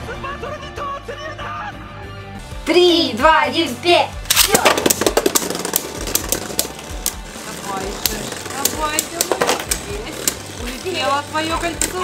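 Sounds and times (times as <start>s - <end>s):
spinning tops clattering: 4.3s - 12.0s.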